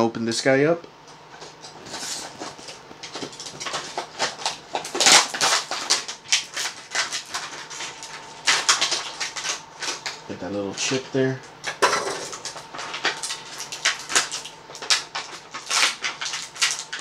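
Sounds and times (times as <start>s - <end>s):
plastic packaging crinkling and tearing: 1.8s - 17.0s.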